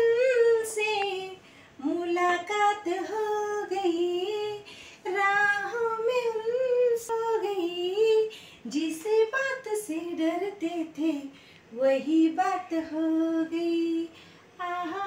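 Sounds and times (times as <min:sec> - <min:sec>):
woman singing unaccompanied: 0:00.0 - 0:15.0.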